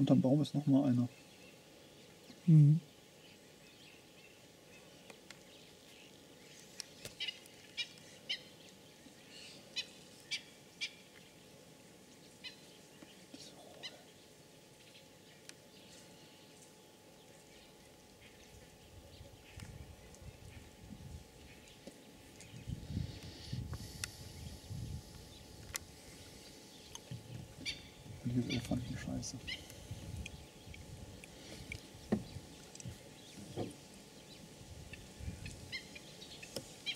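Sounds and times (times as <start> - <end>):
birds calling: 0.0 - 36.9.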